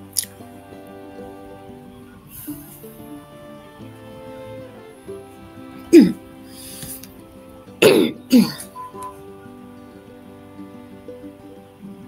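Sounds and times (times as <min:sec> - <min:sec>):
soft background music: 0:00.0 - 0:12.0
person clearing throat and coughing: 0:07.8 - 0:08.7.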